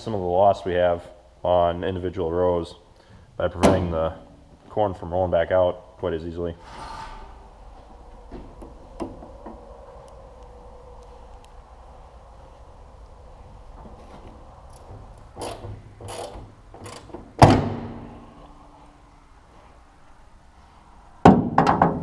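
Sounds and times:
faint clicks: 8.0 - 16.2.

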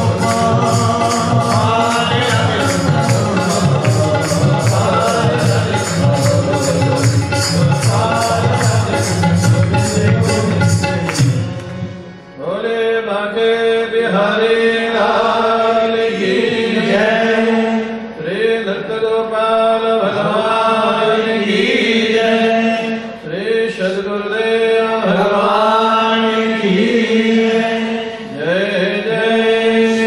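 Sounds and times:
devotional chanting: 0.0 - 30.0.

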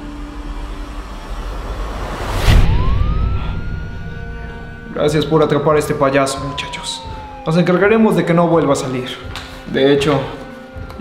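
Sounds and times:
loud rushing swell: 0.1 - 8.1
police siren winding up: 2.4 - 9.0.

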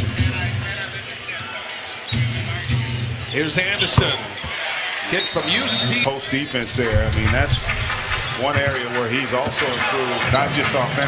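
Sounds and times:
crowd murmur: 4.2 - 9.8.

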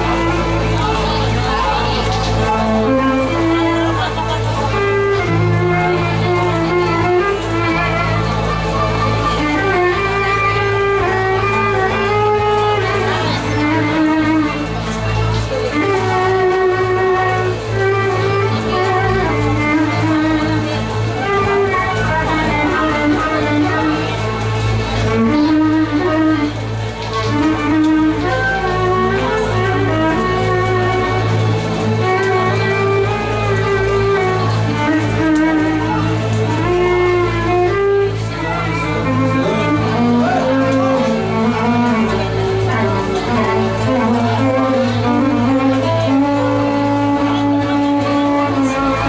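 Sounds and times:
bass guitar: 0.0 - 49.0
plucked strings: 0.0 - 49.0
violin melody: 0.0 - 49.0.

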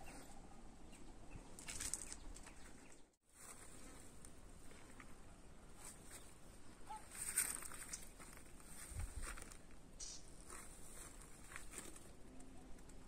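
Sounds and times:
soft rustles and scuffs: 1.6 - 12.2.

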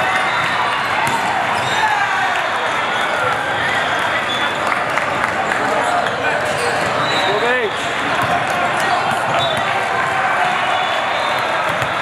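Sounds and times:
chatter of many voices: 0.0 - 12.0
volleyballs bouncing and struck: 0.8 - 1.8, 7.8 - 10.6, 11.3 - 12.0.

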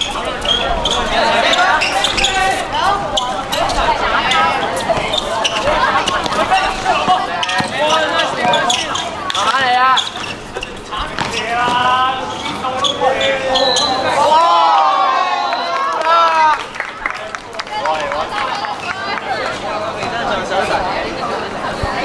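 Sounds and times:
voices calling out: 0.0 - 22.0
basketball bouncing on court: 4.9 - 9.6, 11.1 - 11.9.

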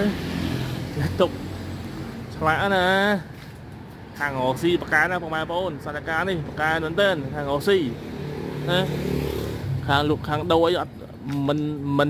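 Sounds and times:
motor vehicle engine: 0.0 - 12.0.

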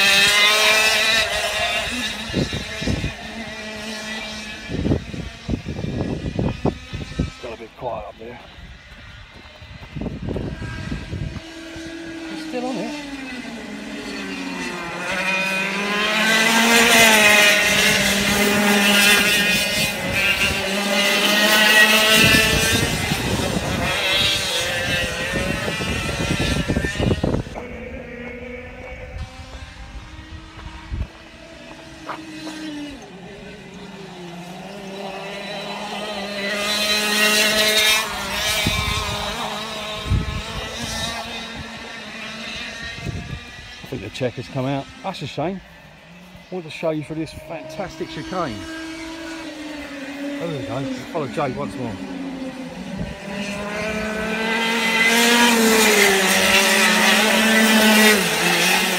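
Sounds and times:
kart engines passing: 0.0 - 58.9.

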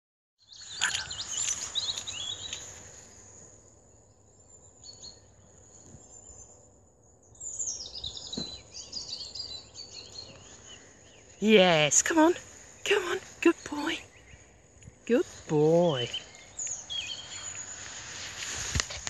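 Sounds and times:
faint outdoor background: 0.4 - 19.0
small birds chirping: 0.4 - 19.0.

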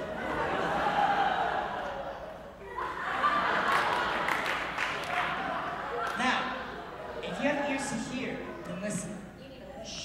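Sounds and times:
audience laughing: 0.0 - 7.8.

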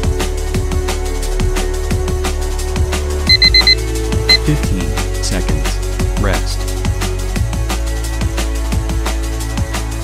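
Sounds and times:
drum and bass music: 0.0 - 10.0
electronic timer beeps: 3.3 - 4.4.

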